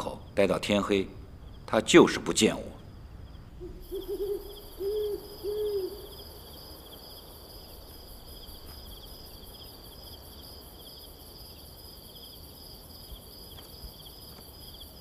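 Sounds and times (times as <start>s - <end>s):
crickets chirping: 0.0s - 15.0s
owl hooting: 3.6s - 6.4s.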